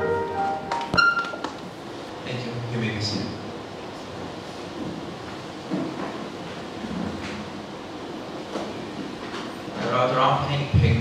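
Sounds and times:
rumbling room noise: 0.0 - 11.0.

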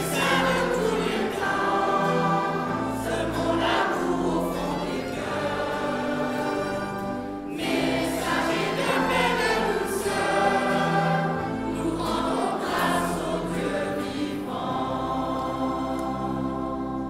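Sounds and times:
choir singing sustained notes: 0.0 - 17.0.

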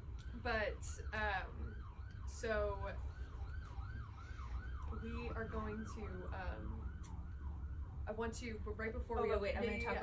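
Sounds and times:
siren yelping: 0.2 - 10.0.

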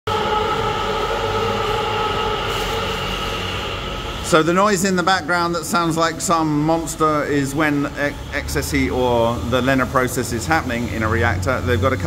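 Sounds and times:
mechanical drone with held tones: 0.1 - 12.0.

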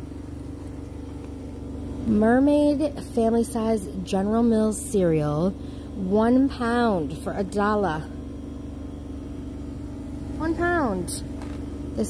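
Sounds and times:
faint steady tone: 0.0 - 12.0
low background hum: 0.0 - 12.0.

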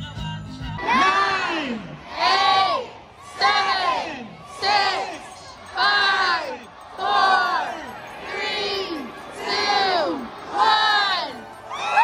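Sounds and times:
crowd shouting together: 0.8 - 12.0.

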